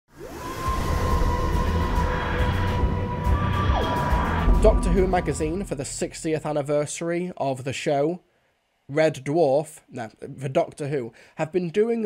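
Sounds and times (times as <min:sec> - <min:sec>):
synth tone gliding up: 0:00.1 - 0:06.3
dense rumbling bass: 0:00.7 - 0:06.4.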